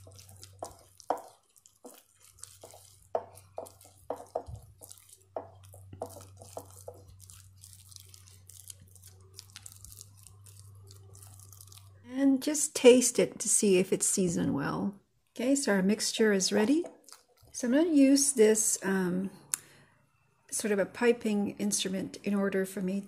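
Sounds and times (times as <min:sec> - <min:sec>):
spatula stirring in a ceramic bowl: 0:00.0 - 0:12.1, 0:16.1 - 0:18.2.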